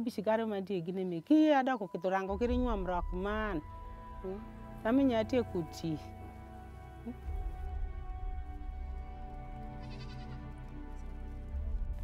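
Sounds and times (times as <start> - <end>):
soft background music: 0.0 - 12.0
farm animal bleat: 9.8 - 10.5.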